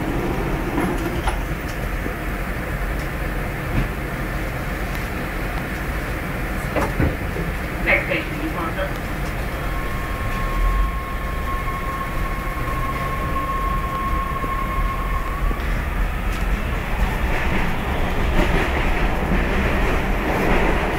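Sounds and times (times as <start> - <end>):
train rattling: 0.0 - 20.9
train rumble: 0.0 - 20.9
thin steady whine: 8.0 - 18.4.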